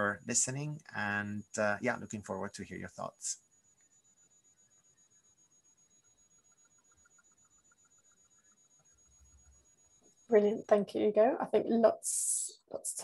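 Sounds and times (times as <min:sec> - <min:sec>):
faint pulsing beep: 0:00.0 - 0:11.3
faint high whine: 0:00.0 - 0:12.7.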